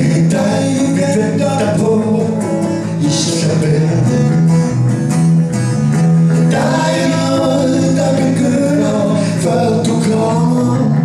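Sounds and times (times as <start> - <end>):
man singing: 0.0 - 4.6, 6.3 - 11.0
electric bass guitar: 0.0 - 11.0
strummed acoustic guitar: 0.0 - 11.0.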